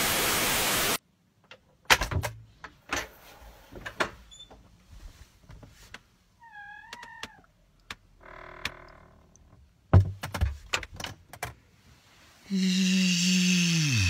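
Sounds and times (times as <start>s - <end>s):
knocks and bumps in wardrobe: 9.9s - 11.2s
man humming low note: 12.5s - 14.0s.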